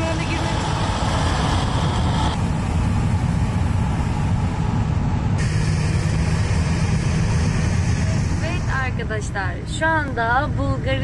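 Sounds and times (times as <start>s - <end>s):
higher road hiss: 0.0s - 11.0s
road and engine noise in car: 0.0s - 11.0s.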